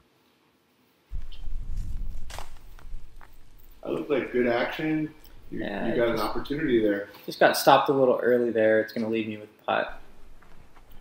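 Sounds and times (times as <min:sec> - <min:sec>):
low rumble of microphone noise: 0:01.1 - 0:07.0, 0:09.8 - 0:11.0.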